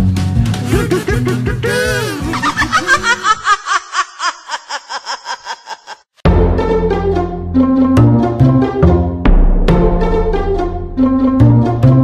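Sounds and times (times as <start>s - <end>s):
background music: 0.0s - 3.5s, 6.2s - 12.0s
high-pitched cackling laugh: 0.7s - 6.2s.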